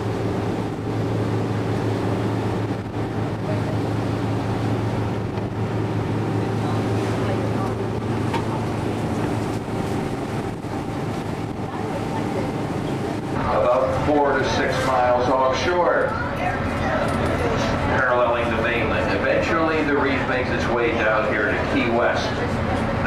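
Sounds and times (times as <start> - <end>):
wind and water hiss: 0.0 - 16.0
boat engine drone: 0.0 - 23.0.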